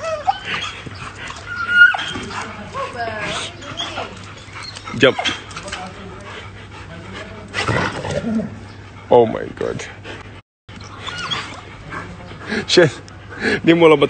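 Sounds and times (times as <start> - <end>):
dog high-pitched calls: 0.0 - 2.3, 10.8 - 11.6.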